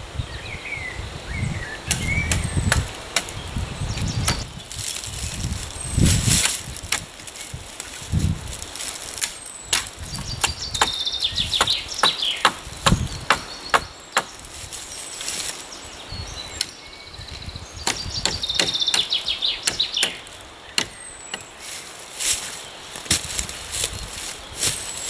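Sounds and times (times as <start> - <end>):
songbird singing: 0.0 - 25.0
hatchet chopping wood: 1.9 - 3.4, 4.2 - 4.5, 9.2 - 11.0, 11.6 - 14.4, 17.8 - 21.5, 23.1 - 23.3.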